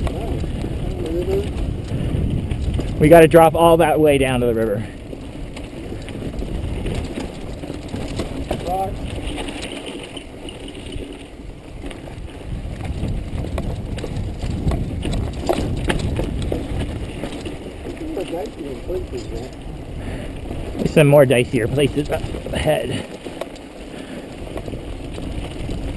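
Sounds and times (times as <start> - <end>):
bike tyres rattling over rock: 0.0 - 25.9
wind rush on microphone: 0.0 - 25.9.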